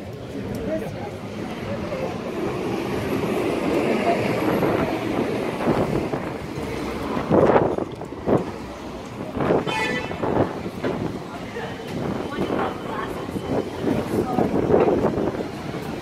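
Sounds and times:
city street traffic: 0.0s - 16.0s
people's voices: 0.0s - 16.0s.

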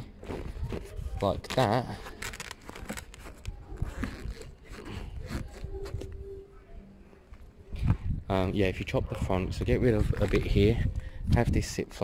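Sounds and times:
vinyl seat cover rustling: 0.2s - 6.3s.

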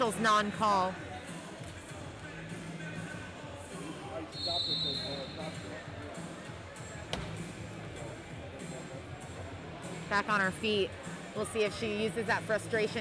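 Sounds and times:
high whistle-like tone: 4.3s - 5.5s.

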